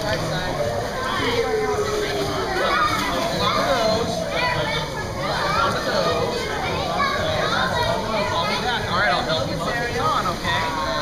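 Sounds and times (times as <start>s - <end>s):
children chattering and calling out: 0.0s - 11.0s
indistinct talk: 0.0s - 11.0s
indoor pool background noise: 0.0s - 11.0s.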